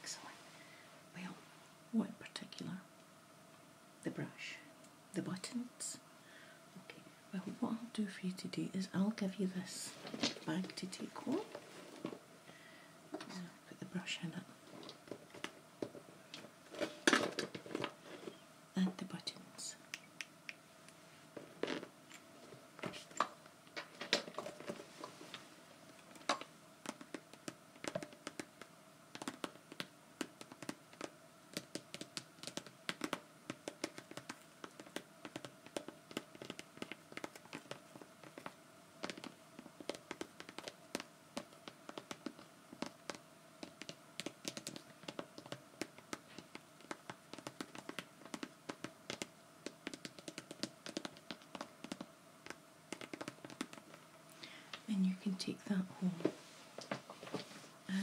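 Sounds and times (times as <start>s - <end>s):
fingernails tapping on plastic bag: 26.2s - 54.0s.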